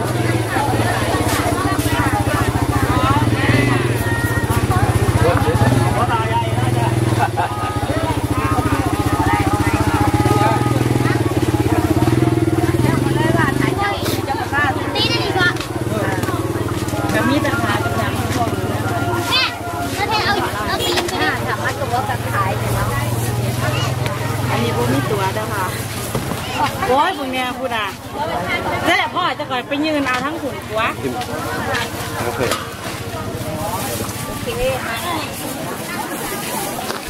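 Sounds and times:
people talking: 0.0s - 37.0s.

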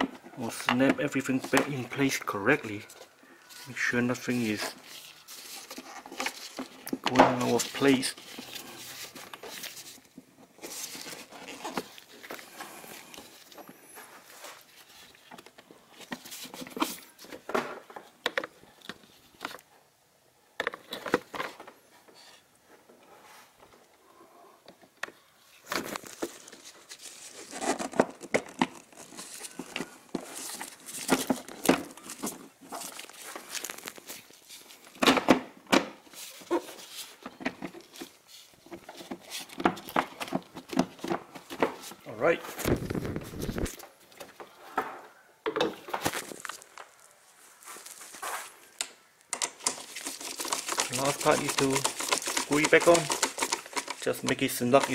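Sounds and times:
plastic cover clicking and scraping: 4.4s - 13.7s, 24.7s - 42.0s, 48.8s - 54.9s.

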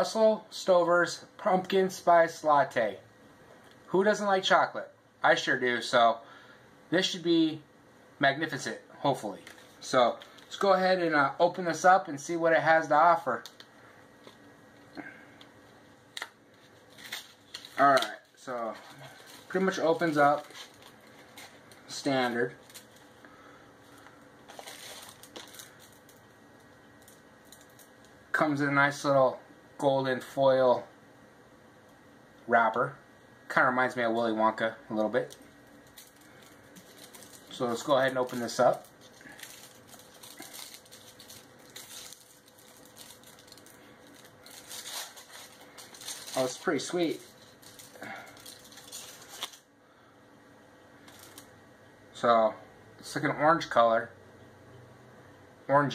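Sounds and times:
soft crackles: 13.2s - 28.2s, 35.0s - 49.7s
candy wrapper crinkling: 16.1s - 23.2s, 23.8s - 28.1s, 35.0s - 49.7s, 51.0s - 51.5s.

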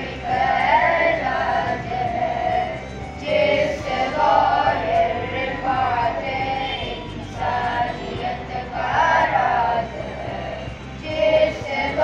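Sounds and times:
boys singing in chorus: 0.0s - 12.0s.

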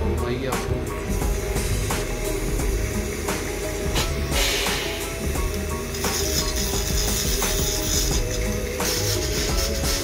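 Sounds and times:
background music: 0.0s - 10.0s
dental scaler hissing: 1.0s - 10.0s.

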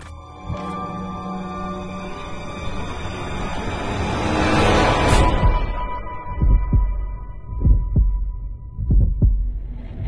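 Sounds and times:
heartbeat thumps: 6.3s - 10.0s.

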